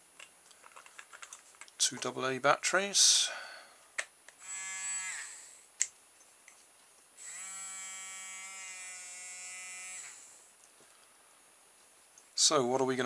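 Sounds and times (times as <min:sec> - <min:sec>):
nail grinder motor buzzing: 0:04.4 - 0:05.5, 0:07.2 - 0:10.3.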